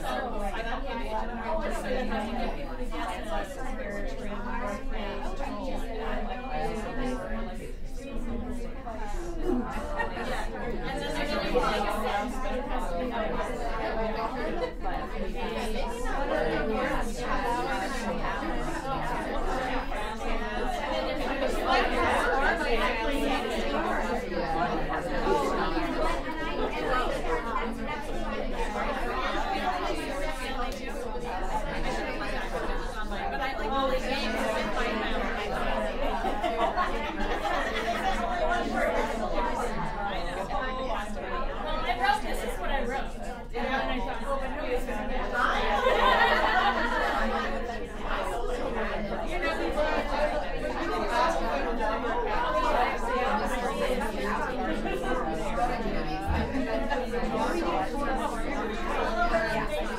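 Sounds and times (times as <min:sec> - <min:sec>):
babble of overlapping conversations: 0:00.0 - 0:59.9.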